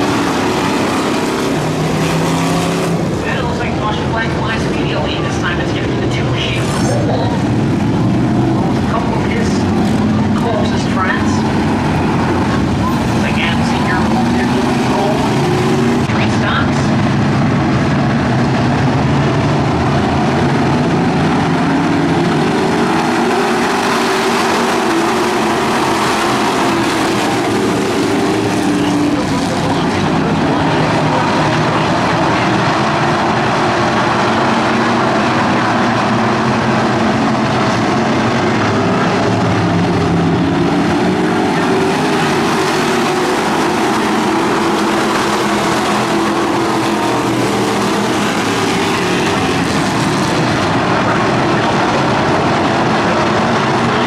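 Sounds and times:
race car engines: 0.0 - 54.0.

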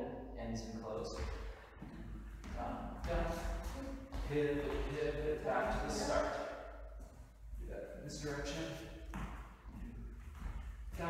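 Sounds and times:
person calling out dance steps: 1.0 - 6.6.

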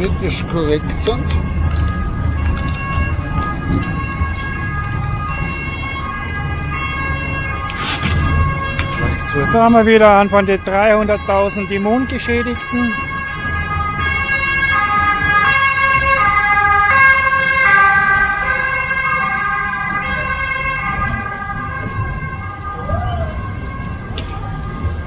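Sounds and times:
ambulance two-tone siren: 0.0 - 25.0
street traffic rumble: 0.0 - 25.0.

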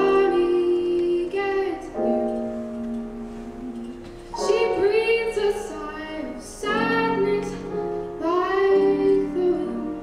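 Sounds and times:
solo piano accompaniment: 0.0 - 10.0
woman singing jazz ballad: 0.0 - 10.0.

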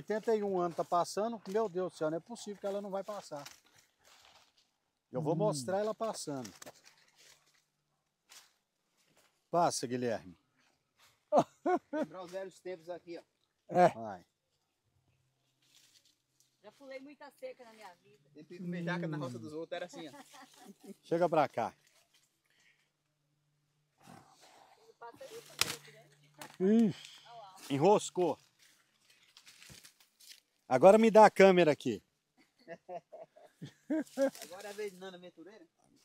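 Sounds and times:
rustling through undergrowth: 0.0 - 9.5, 15.3 - 18.3, 18.9 - 23.0, 24.2 - 30.8, 33.6 - 35.3.

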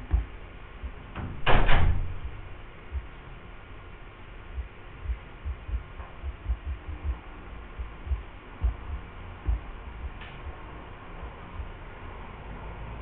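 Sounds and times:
soft low thuds: 0.0 - 3.4, 4.5 - 10.8, 11.5 - 11.9
faint steady hum: 0.0 - 13.0.

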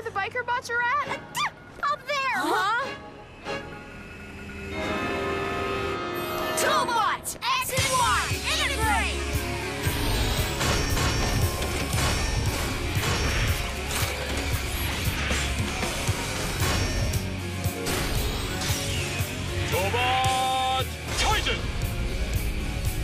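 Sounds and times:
rising tone: 3.1 - 7.2.

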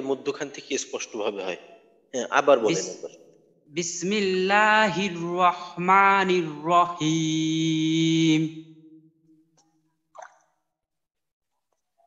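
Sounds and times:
faint wet mouth click: 10.2 - 10.5.

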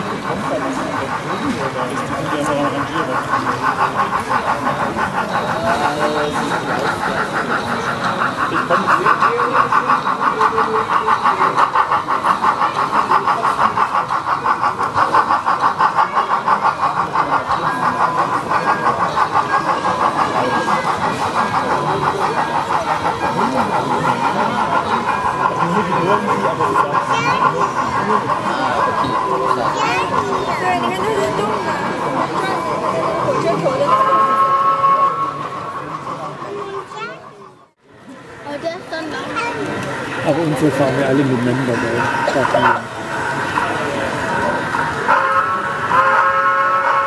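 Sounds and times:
crowd chatter: 0.0 - 47.0
model steam locomotive chuffing: 0.0 - 47.0.

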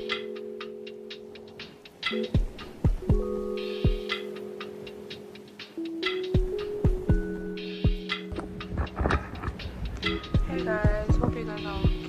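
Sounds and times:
deep kick drum: 10.0 - 12.0.

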